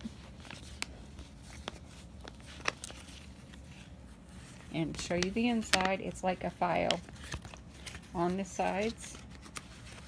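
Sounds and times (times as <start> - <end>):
low room hum: 0.0 - 10.0
paper rustling: 0.0 - 10.0.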